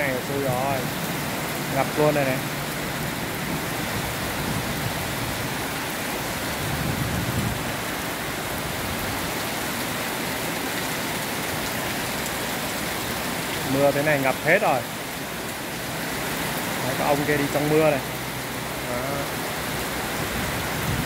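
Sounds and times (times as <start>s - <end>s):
heavy rain on standing water: 0.0s - 21.0s.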